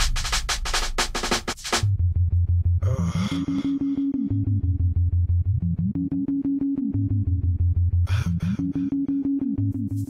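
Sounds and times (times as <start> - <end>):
sharp clicking percussion: 0.0 - 1.8
deep bass rumble: 1.8 - 3.3, 4.2 - 6.2, 7.0 - 8.6
pulsing low bass note: 1.8 - 10.0.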